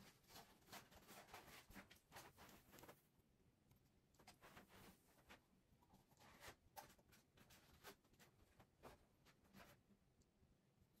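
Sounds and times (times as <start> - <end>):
faint scratchy rustles: 0.0 - 3.1.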